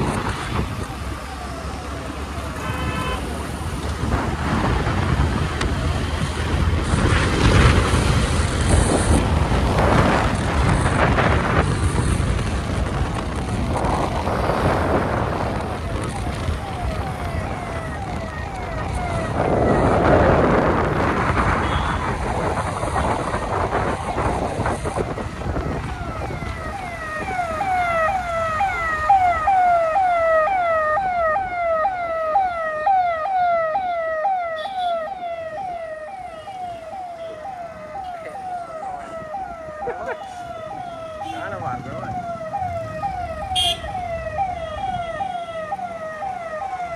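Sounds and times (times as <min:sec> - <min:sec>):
ambulance siren wailing: 0:00.0 - 0:03.7, 0:04.6 - 0:46.9
wind and road noise: 0:00.0 - 0:46.9.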